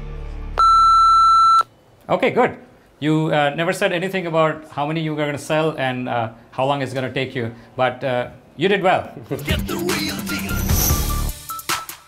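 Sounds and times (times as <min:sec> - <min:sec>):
electronic beep: 0:00.6 - 0:01.7.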